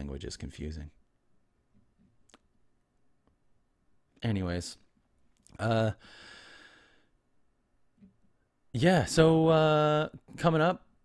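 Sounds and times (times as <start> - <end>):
man sighing: 5.5 - 7.1.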